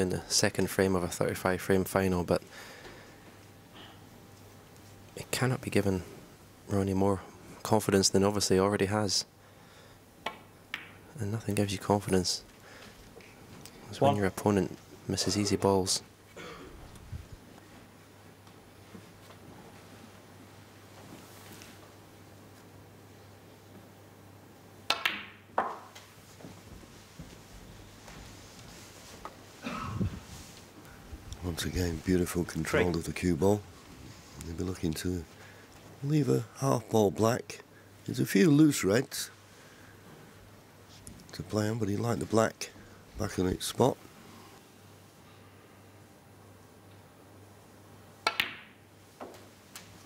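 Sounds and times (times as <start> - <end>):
ball knocking into pocket: 10.2 - 11.0, 24.9 - 25.9, 48.2 - 48.8
snooker balls clicking together: 24.9 - 26.1, 48.2 - 49.9
cue tip clicking on ball: 48.2 - 49.4.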